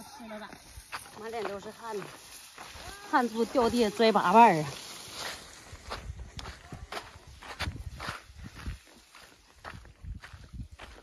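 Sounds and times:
footsteps on dirt path: 0.0s - 11.0s.

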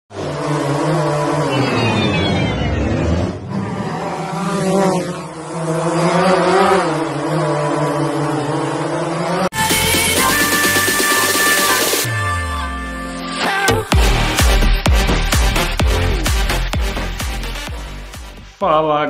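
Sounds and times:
drone motors buzzing: 0.1s - 12.1s
electronic music: 1.4s - 3.4s, 9.5s - 18.6s.

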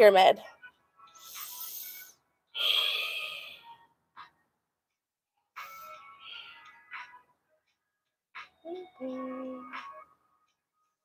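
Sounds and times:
woman breathing through mouth: 1.2s - 3.8s.

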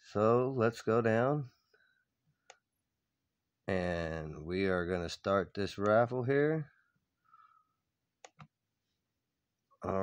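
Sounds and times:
computer mouse clicks: 8.2s - 8.6s.

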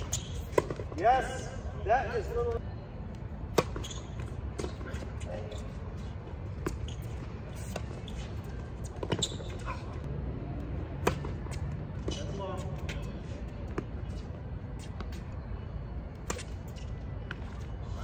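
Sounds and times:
tennis balls struck by rackets: 0.0s - 1.4s, 3.4s - 5.3s, 10.6s - 15.2s, 16.2s - 17.6s
tennis balls bouncing: 0.0s - 1.5s, 3.4s - 15.3s, 16.0s - 17.7s.

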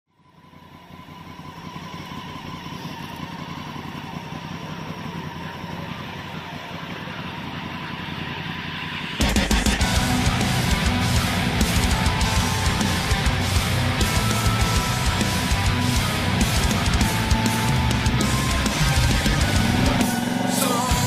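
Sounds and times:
low rumbling drone: 0.4s - 21.0s
heavy rock music: 5.9s - 21.0s.

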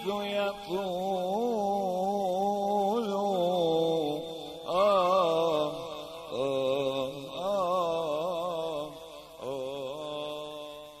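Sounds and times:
man singing ornamented notes: 0.0s - 11.0s.

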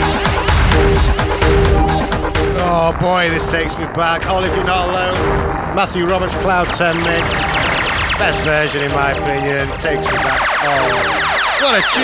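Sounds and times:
house music from vinyl: 0.0s - 5.5s
voice over music: 0.0s - 12.0s.

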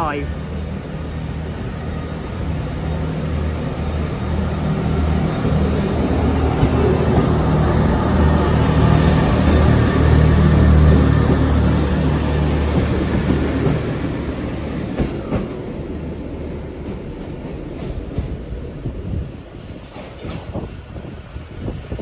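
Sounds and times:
diesel train engine humming: 0.0s - 18.8s.

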